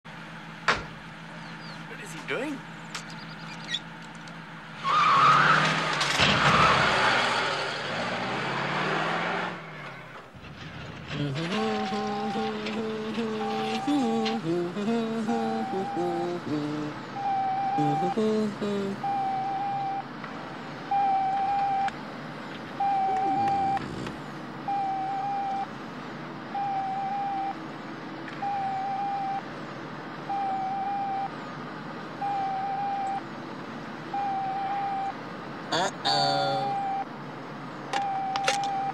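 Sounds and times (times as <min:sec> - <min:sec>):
electronic tones stepping in pitch: 0:11.3 - 0:20.0, 0:22.8 - 0:23.9
electronic beeping: 0:11.4 - 0:20.1, 0:20.9 - 0:21.9, 0:22.8 - 0:24.0, 0:24.7 - 0:25.7, 0:26.6 - 0:27.6, 0:28.4 - 0:29.5, 0:30.3 - 0:31.4, 0:32.2 - 0:33.2, 0:34.1 - 0:35.2, 0:36.2 - 0:37.1, 0:38.0 - 0:38.9.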